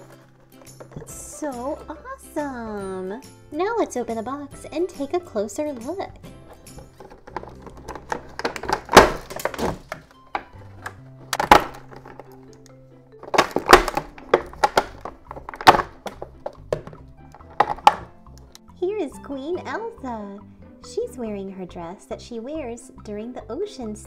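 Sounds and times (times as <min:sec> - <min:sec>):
light background music: 0:00.0 - 0:24.0
plastic packaging crackling: 0:06.6 - 0:12.6, 0:13.2 - 0:18.1.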